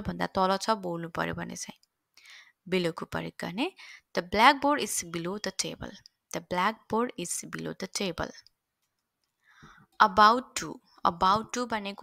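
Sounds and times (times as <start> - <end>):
person narrating: 10.0 - 12.0.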